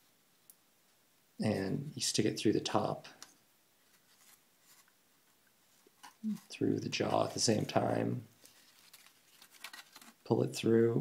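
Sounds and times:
faint paper rustles: 3.8s - 10.4s.

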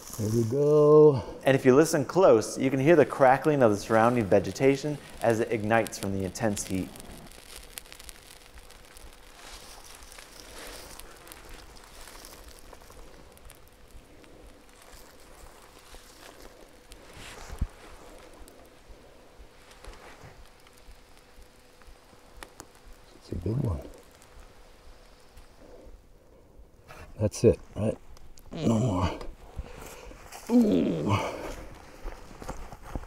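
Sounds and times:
vegetation crackling and popping: 0.0s - 33.0s.

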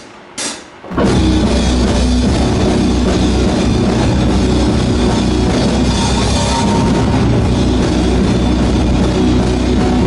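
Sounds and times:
heavy metal band playing: 0.9s - 10.0s.

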